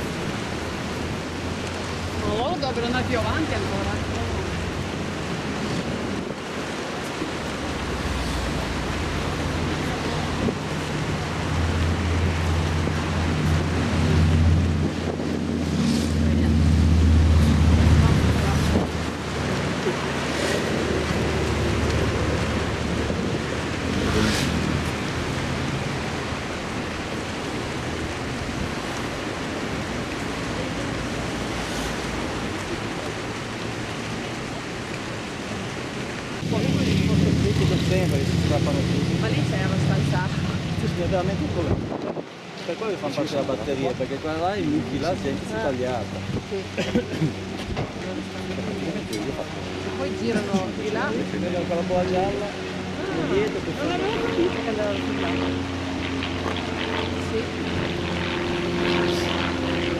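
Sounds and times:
engine humming: 0.0s - 42.6s, 43.7s - 59.9s
wind buffeting microphone: 0.0s - 59.9s.

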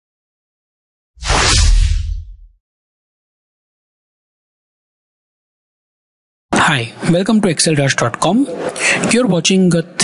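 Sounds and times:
rushing swish: 1.2s - 2.5s.

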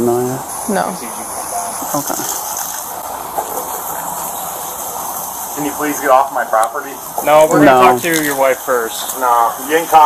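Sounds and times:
steam boiling off embers: 0.0s - 10.0s
water hissing on fire: 0.0s - 10.0s.

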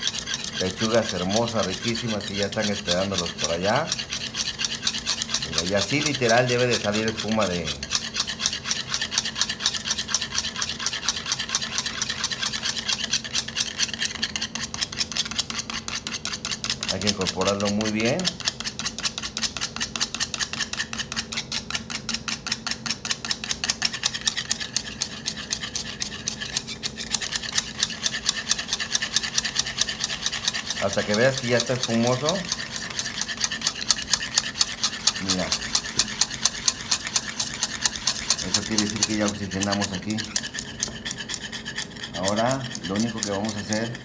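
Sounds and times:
wire whisk beating in a bowl: 0.0s - 44.0s.

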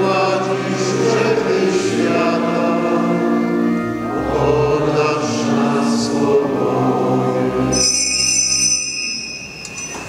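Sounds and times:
choir singing: 0.0s - 8.2s
small altar bells ringing: 7.7s - 10.0s.

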